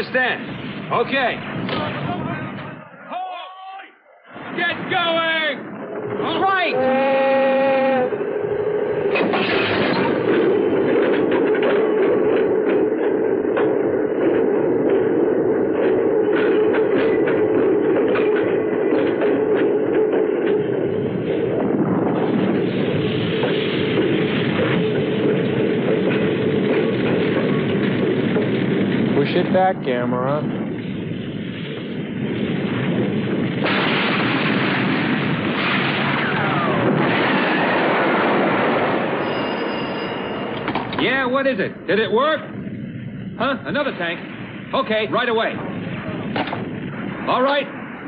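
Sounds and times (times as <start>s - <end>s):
train rumbling: 0.0s - 48.0s
wheels clacking over rail joints: 8.1s - 29.4s.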